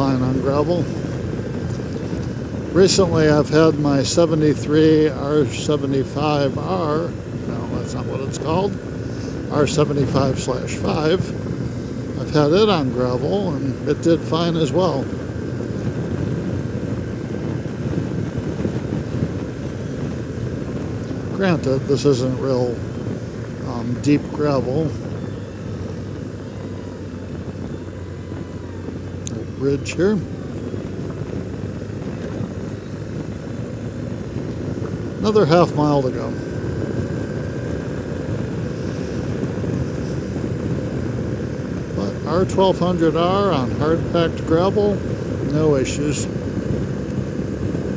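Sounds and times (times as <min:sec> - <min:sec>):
motorcycle engine running: 0:00.0 - 0:47.9
road and wind noise: 0:00.0 - 0:47.9.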